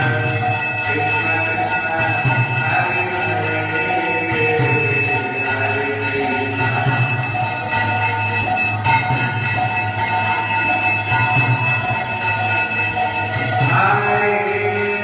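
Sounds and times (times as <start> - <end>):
bells and cymbals ringing: 0.0 - 15.0.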